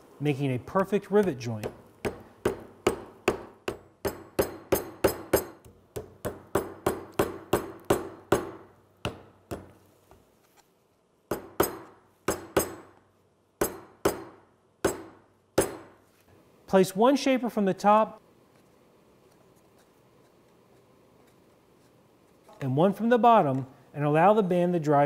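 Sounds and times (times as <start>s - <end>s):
hammer tapping on metal: 1.2s - 9.8s, 11.3s - 13.0s, 13.6s - 15.9s.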